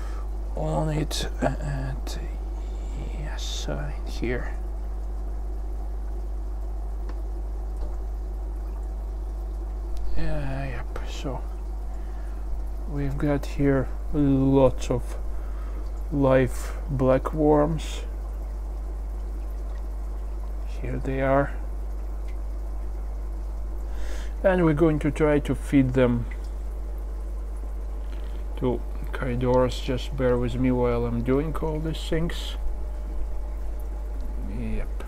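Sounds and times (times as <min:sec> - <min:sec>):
aquarium water trickling and bubbling: 0:00.0 - 0:35.0
constant low hum: 0:00.0 - 0:35.0
faint clicks: 0:07.0 - 0:08.0.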